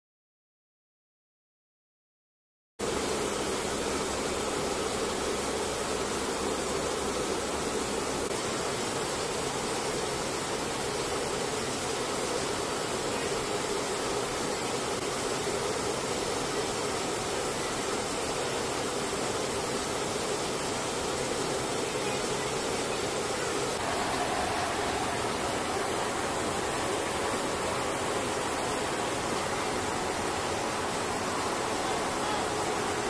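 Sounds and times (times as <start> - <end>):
turboprop engines in flight: 2.9 - 33.0.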